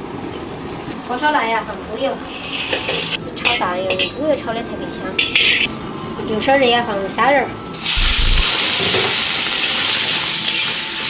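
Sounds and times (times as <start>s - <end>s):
shrimp sizzling in hot oil: 2.3s - 3.2s, 7.8s - 11.0s.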